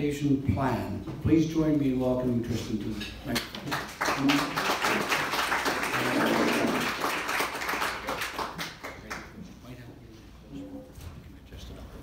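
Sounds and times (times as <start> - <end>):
audience applauding: 3.6 - 9.3.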